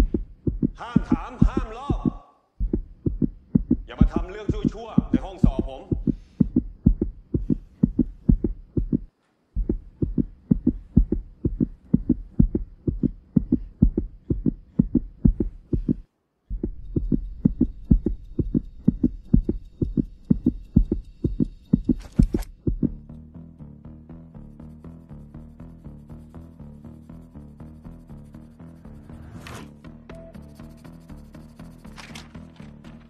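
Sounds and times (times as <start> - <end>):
heartbeat-like thumping pulse: 0.0 - 23.1.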